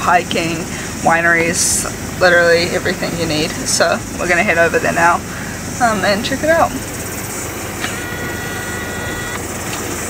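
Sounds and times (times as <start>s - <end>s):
engine running inside cabin: 0.0s - 10.0s
steady high tone: 6.4s - 9.6s.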